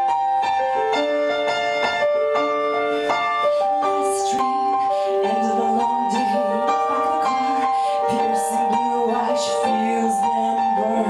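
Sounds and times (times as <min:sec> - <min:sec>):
keyboard piano chords: 0:00.0 - 0:11.0.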